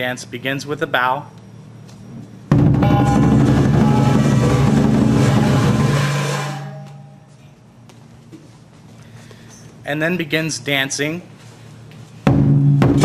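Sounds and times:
drum beaten rapidly: 2.5 - 6.7, 12.2 - 13.0
crashing cymbals: 2.8 - 7.3.

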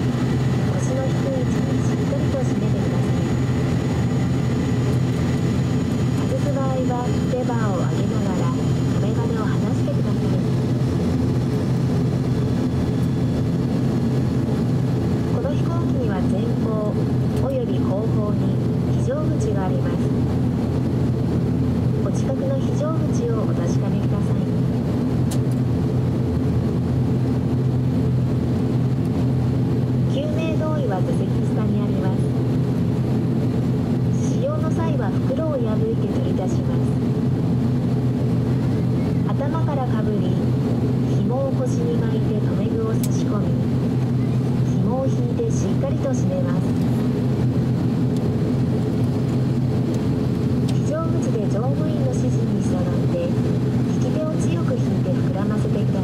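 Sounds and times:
turboprop engine idling: 0.0 - 56.0.

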